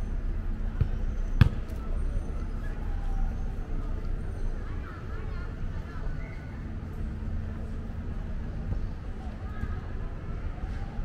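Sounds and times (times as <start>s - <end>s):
city street rumble: 0.0s - 11.0s.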